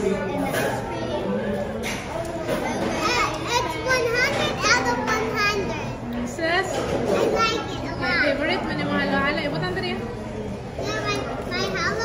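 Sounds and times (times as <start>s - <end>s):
children talking excitedly: 0.0s - 12.0s
murmur of people: 0.0s - 12.0s.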